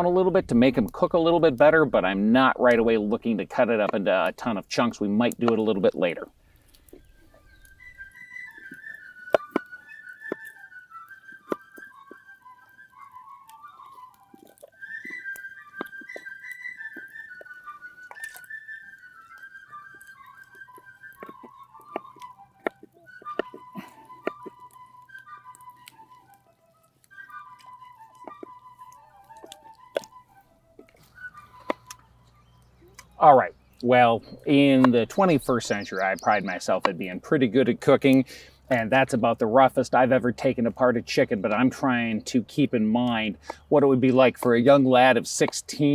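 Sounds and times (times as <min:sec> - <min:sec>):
solo fife playing lively tune: 0:00.0 - 0:45.9.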